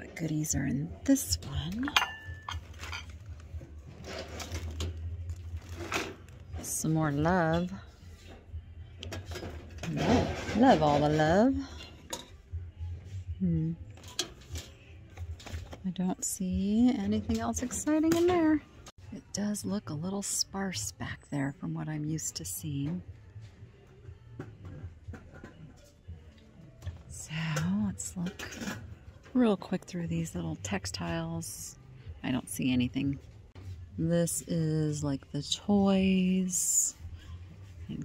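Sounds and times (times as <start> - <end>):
items rattling in wire cart: 2.5 - 6.8.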